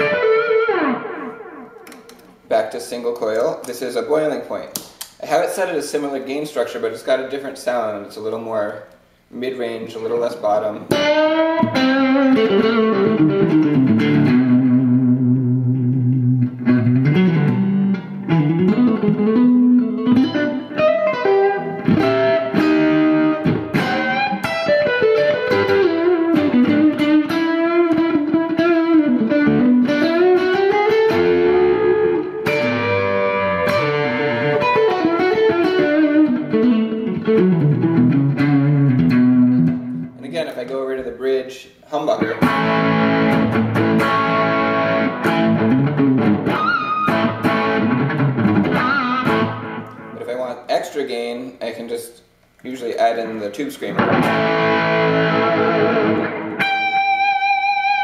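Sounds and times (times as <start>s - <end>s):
overdriven electric guitar: 0.0s - 2.4s, 10.9s - 40.2s, 42.3s - 50.2s, 54.0s - 58.0s.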